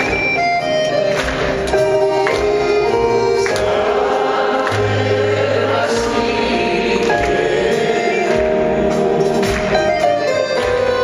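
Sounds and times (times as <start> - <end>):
live band playing: 0.0 - 11.0
drums: 4.8 - 11.0.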